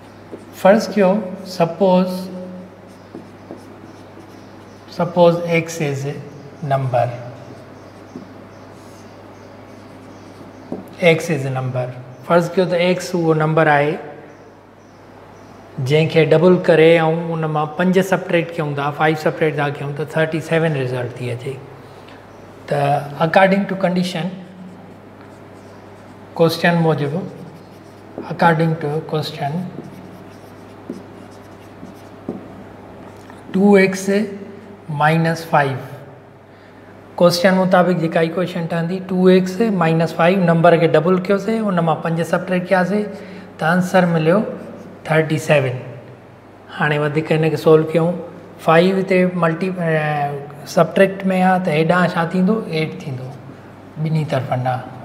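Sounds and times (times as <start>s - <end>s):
marker writing on whiteboard: 0.0s - 1.0s, 2.1s - 6.4s, 7.4s - 11.3s, 24.7s - 33.5s.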